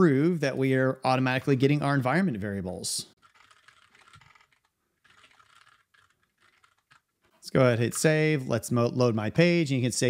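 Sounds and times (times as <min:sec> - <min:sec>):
typing on a computer keyboard: 0:03.2 - 0:07.1.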